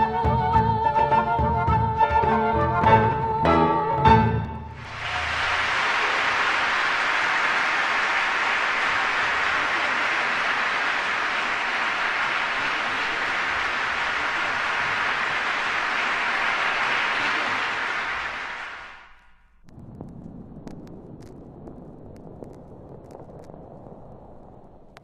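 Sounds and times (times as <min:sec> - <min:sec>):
audience applauding: 0:04.7 - 0:19.3.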